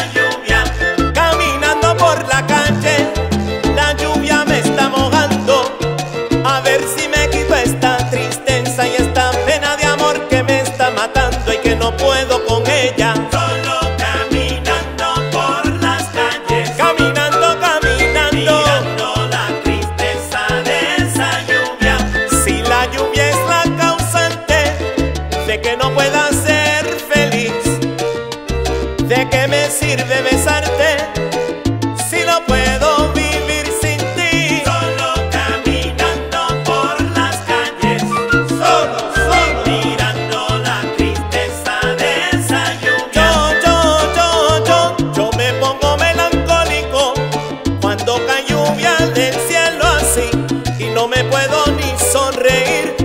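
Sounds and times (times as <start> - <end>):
instrumental salsa music: 0.0 - 53.0.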